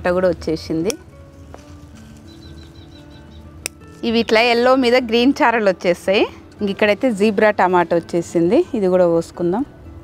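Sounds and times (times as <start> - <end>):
soft background music: 0.0 - 10.0
scissors snipping stem: 3.6 - 4.1.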